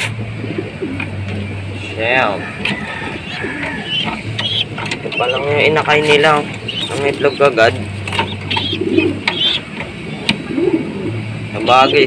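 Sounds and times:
pigeons cooing: 0:00.0 - 0:12.0
light clicks and knocks: 0:03.6 - 0:05.2.

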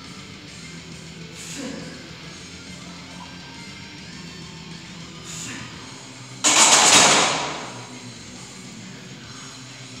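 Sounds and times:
barbell clanking into metal rack: 0:06.5 - 0:07.9.

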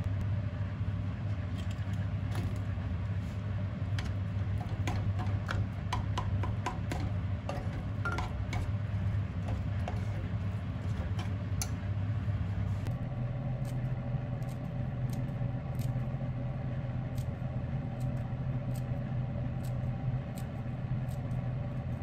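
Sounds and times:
steady low hum: 0:00.0 - 0:22.0
scissors snipping leaves: 0:13.6 - 0:16.2, 0:17.1 - 0:21.4.

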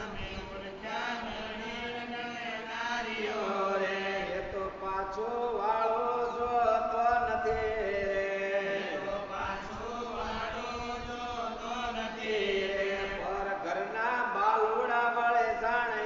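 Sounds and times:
mantra chanting in held notes: 0:00.0 - 0:16.0.

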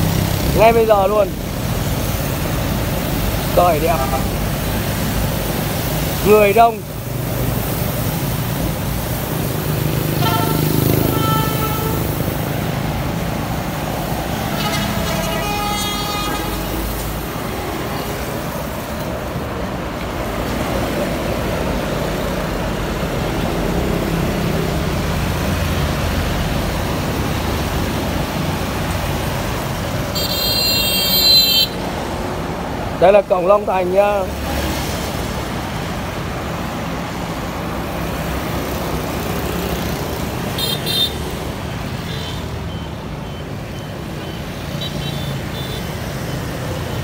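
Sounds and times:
road traffic passing: 0:00.0 - 0:47.0
vehicle horns: 0:10.1 - 0:12.4, 0:14.3 - 0:17.1, 0:30.1 - 0:31.9, 0:40.6 - 0:41.3, 0:44.8 - 0:45.9
shrill high horn: 0:10.2 - 0:12.2, 0:14.4 - 0:16.9.

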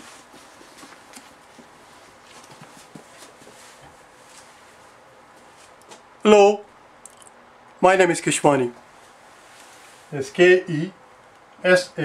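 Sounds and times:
soft knocks and shuffling: 0:00.0 - 0:06.1
low room hiss: 0:00.0 - 0:12.0.

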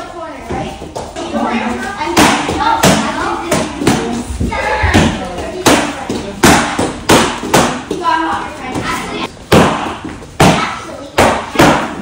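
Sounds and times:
kicks smacking kicking paddles: 0:09.5 - 0:12.0.

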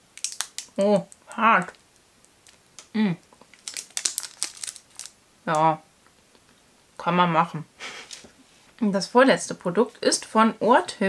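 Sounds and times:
foil wrapper crinkling: 0:00.1 - 0:05.2
person humming: 0:02.9 - 0:03.2.

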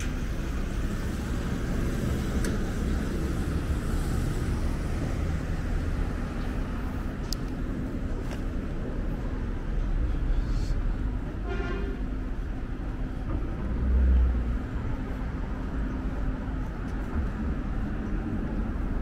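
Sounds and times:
street traffic rumble: 0:00.0 - 0:19.0
car horn toot: 0:11.4 - 0:12.0.

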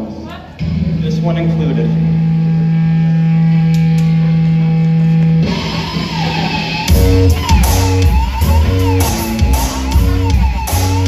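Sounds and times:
heavy bass guitar: 0:00.6 - 0:11.0
live rock band playing: 0:00.6 - 0:11.0.

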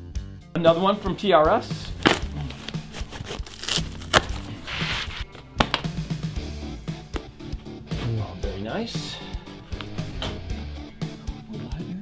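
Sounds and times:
background music: 0:00.0 - 0:12.0
packaging rustle: 0:01.9 - 0:05.3
cardboard box clicks and knocks: 0:02.0 - 0:04.4.

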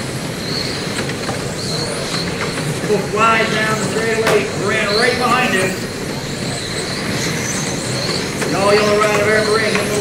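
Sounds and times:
rc car motors whining: 0:00.3 - 0:10.0.

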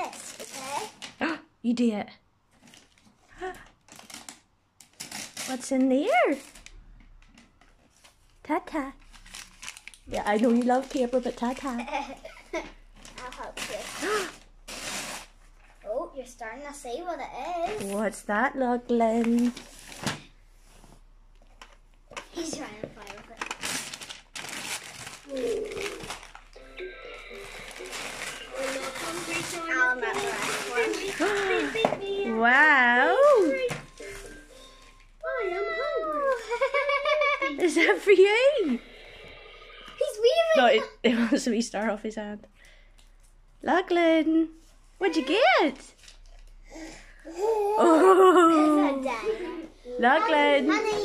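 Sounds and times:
wrapping paper crinkling and tearing: 0:00.0 - 0:01.2, 0:02.6 - 0:06.8, 0:07.9 - 0:12.2, 0:12.9 - 0:15.5, 0:19.2 - 0:20.3, 0:22.3 - 0:26.6, 0:27.3 - 0:32.3
small child's vocal sound: 0:25.2 - 0:26.2, 0:35.2 - 0:36.5, 0:47.3 - 0:50.0
voices: 0:28.1 - 0:33.9, 0:37.5 - 0:38.8.

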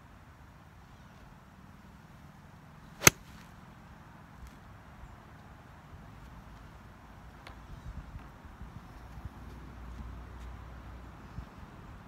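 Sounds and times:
faint outdoor background: 0:00.0 - 0:12.0
golf club striking ball: 0:03.0 - 0:03.3.

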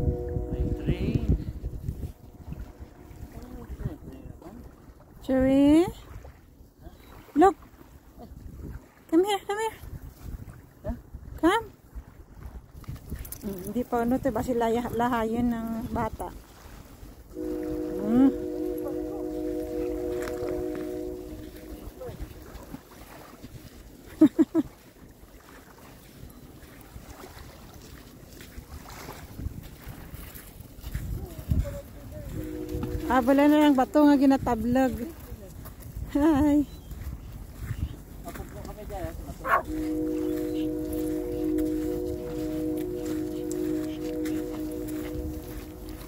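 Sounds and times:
distant multi-tone horn chord: 0:00.0 - 0:04.9, 0:17.3 - 0:22.8, 0:32.3 - 0:33.8, 0:39.5 - 0:46.0
wind buffeting microphone: 0:00.0 - 0:06.4, 0:08.3 - 0:09.0, 0:09.7 - 0:23.9, 0:28.5 - 0:46.0
faint voices: 0:39.4 - 0:46.0.

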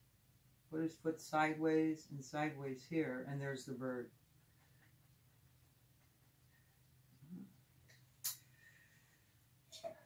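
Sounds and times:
faint low hum: 0:00.0 - 0:10.0
soft hum of a voice: 0:07.2 - 0:07.7, 0:09.6 - 0:10.0.

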